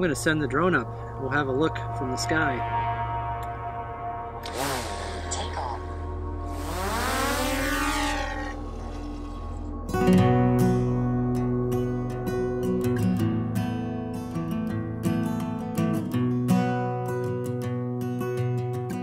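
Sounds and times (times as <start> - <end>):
drone motors whining: 4.4 - 5.6, 6.4 - 9.8
acoustic guitar music: 4.4 - 19.0.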